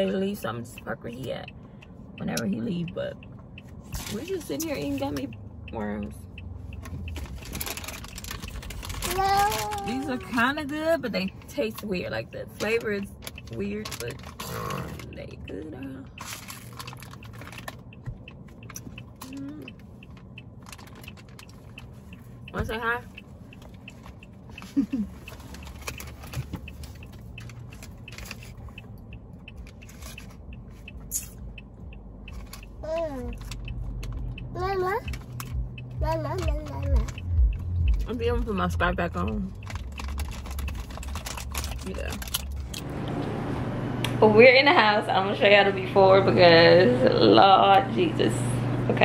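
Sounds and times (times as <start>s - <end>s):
plastic packaging crinkling: 7.2s - 10.3s, 16.2s - 17.8s, 39.7s - 42.7s.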